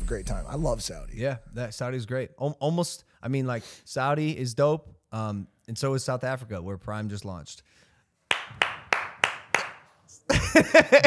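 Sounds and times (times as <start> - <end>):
person clapping: 8.3 - 9.9.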